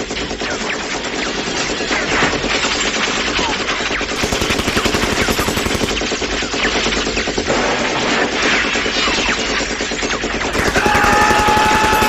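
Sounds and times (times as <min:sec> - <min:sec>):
automatic machine-gun fire: 0:04.2 - 0:06.6, 0:10.4 - 0:12.0.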